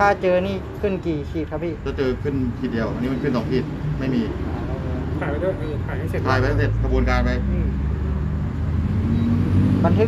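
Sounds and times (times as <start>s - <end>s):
man speaking: 0.0s - 7.8s.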